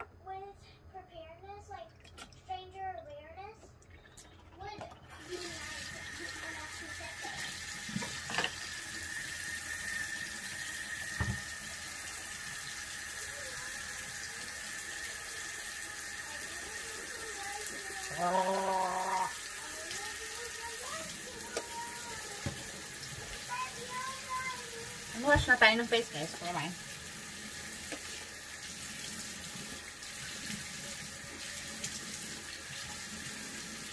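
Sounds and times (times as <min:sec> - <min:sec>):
water running from tap: 0:01.6 - 0:33.9
hum-like voiced sound: 0:18.0 - 0:19.4.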